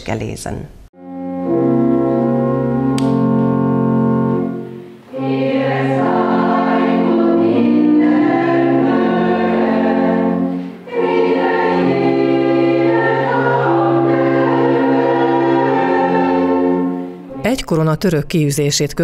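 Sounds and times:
organ chords: 1.0s - 18.2s
choir singing a hymn: 3.5s - 17.4s.

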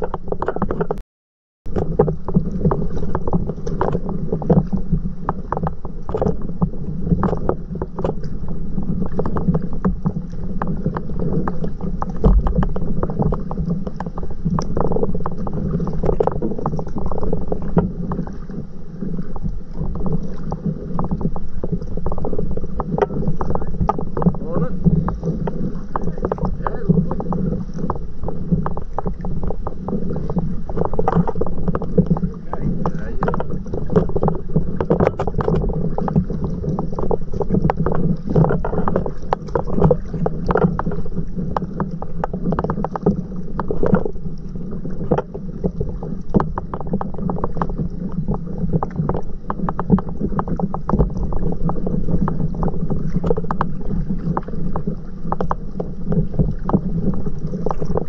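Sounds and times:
water splashing and lapping: 0.0s - 1.0s, 1.7s - 58.0s
steady low rumble: 1.7s - 58.0s
wind on microphone: 1.7s - 58.0s.

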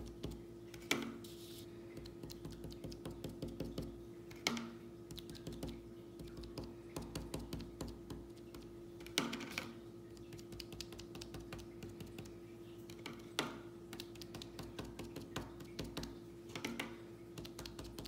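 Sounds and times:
cotton swabs tapping on paper: 0.0s - 4.6s, 5.2s - 8.3s, 13.0s - 18.0s
faint steady hum: 0.0s - 18.0s.

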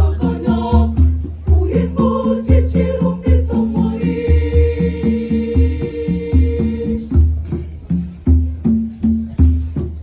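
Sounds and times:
hand drums playing: 0.0s - 10.0s.

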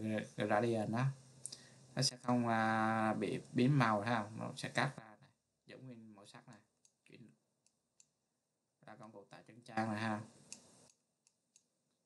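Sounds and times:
computer mouse clicks: 10.4s - 11.7s.

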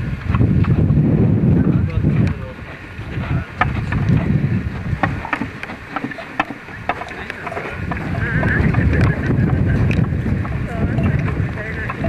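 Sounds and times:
wind on microphone: 0.0s - 12.0s
handcart rolling over dirt road: 1.6s - 12.0s
cart clicking and knocking: 1.8s - 12.0s.

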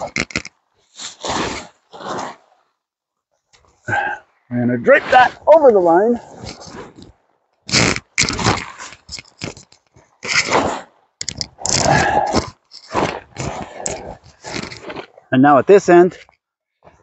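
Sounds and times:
fabric tarp rustling and crinkling: 0.0s - 2.7s, 6.2s - 11.0s, 11.6s - 15.2s.

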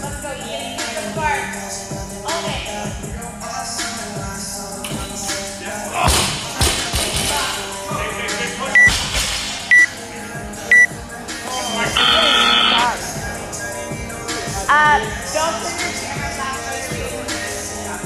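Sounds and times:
background music: 0.0s - 18.0s
timer beeps: 10.7s - 10.9s.

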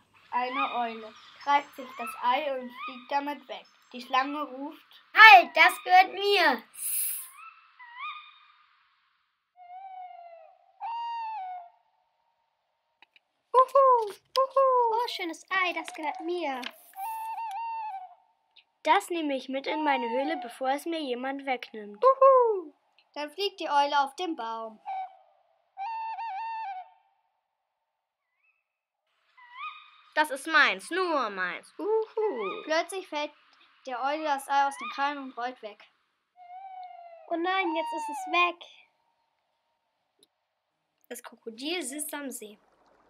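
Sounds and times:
owl hooting: 0.2s - 3.5s, 4.8s - 8.6s, 9.6s - 12.0s, 24.8s - 27.0s, 29.4s - 30.2s, 36.4s - 38.8s
child hooting like an owl: 9.6s - 11.8s, 36.4s - 37.0s.

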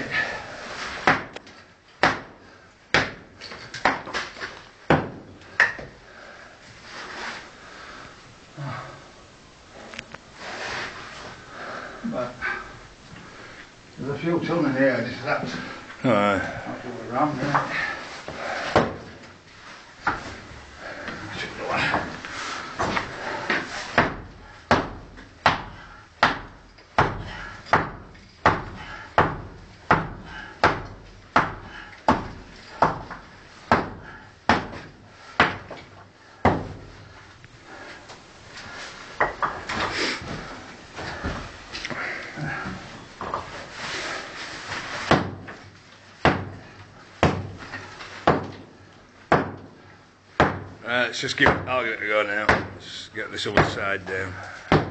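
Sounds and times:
hammer striking brick wall: 2.0s - 4.3s, 4.9s - 5.8s, 22.8s - 35.8s, 36.4s - 36.8s, 45.0s - 45.6s, 46.2s - 47.6s, 48.2s - 48.7s, 49.3s - 49.8s, 50.4s - 50.8s.

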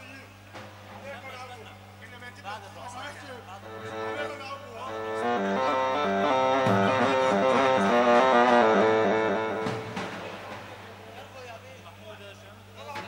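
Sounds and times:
quick melodic run of single notes: 3.6s - 10.8s.

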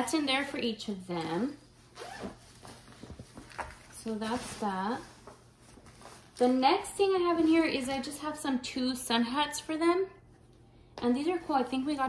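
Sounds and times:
fabric bags rustling: 1.4s - 7.9s.

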